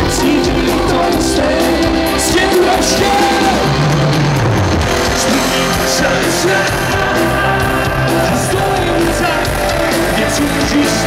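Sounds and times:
man singing: 0:00.0 - 0:03.8, 0:04.9 - 0:11.0
live rock band: 0:00.0 - 0:11.0.

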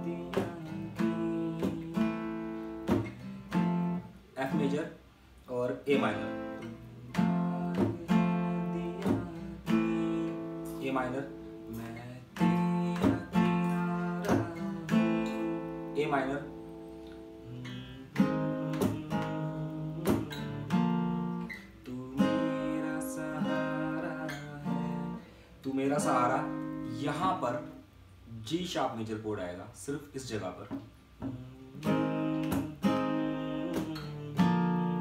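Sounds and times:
acoustic guitar strumming: 0:00.0 - 0:04.9, 0:05.6 - 0:27.9, 0:30.6 - 0:35.0.

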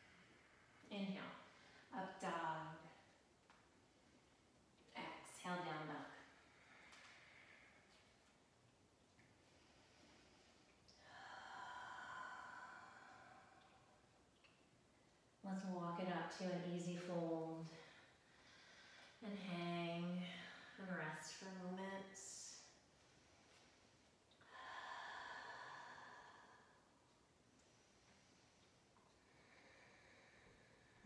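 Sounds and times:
long exhale: 0:09.7 - 0:14.0, 0:24.4 - 0:26.9.

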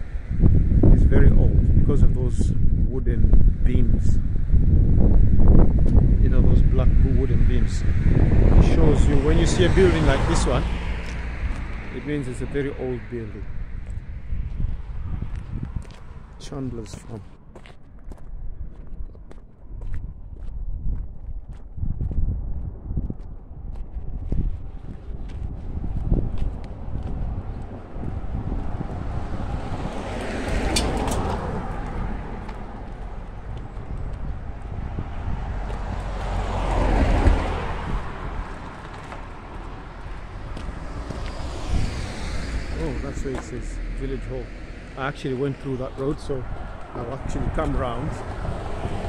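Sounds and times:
cars passing: 0:00.0 - 0:01.8, 0:03.4 - 0:19.0, 0:22.7 - 0:49.0
wind rumble on microphone: 0:00.0 - 0:49.0
footsteps on pavement: 0:10.7 - 0:43.6, 0:45.2 - 0:49.0.

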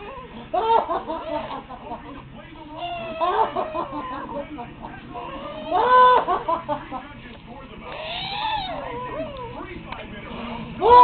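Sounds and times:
baby girl squealing: 0:07.9 - 0:09.5.

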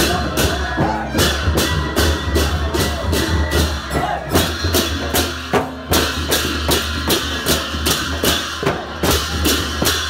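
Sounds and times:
deep drum beats: 0:00.0 - 0:10.0.

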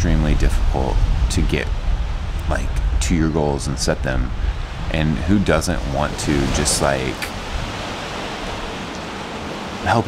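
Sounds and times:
wind rushing: 0:00.0 - 0:09.8
sea at the shoreline: 0:00.0 - 0:10.0.

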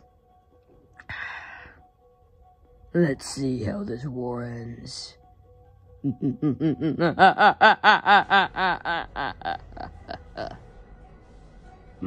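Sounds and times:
man laughing: 0:06.0 - 0:10.6.

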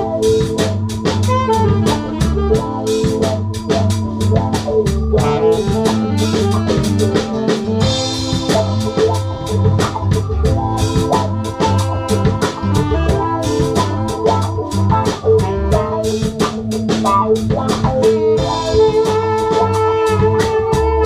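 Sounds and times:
bass guitar: 0:00.0 - 0:21.0
drum kit groove: 0:00.0 - 0:21.0
organ-toned keyboard: 0:00.0 - 0:21.0.

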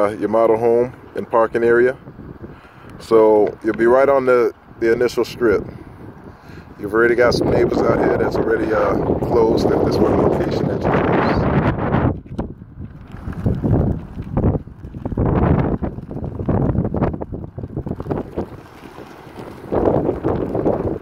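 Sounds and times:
wind buffeting microphone: 0:00.0 - 0:21.0.

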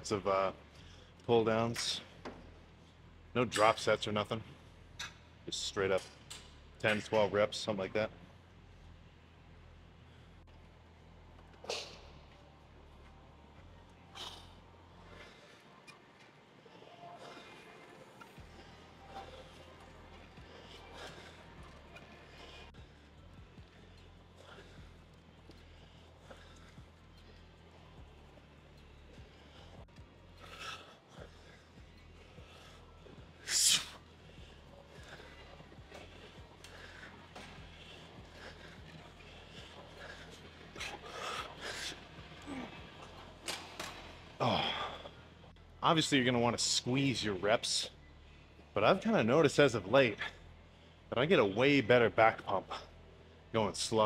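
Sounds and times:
faint background music: 0:00.0 - 0:54.0.

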